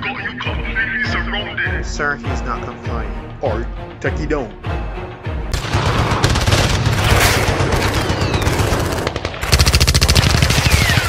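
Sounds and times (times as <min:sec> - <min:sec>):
rapid automatic gunfire: 0:05.5 - 0:11.0.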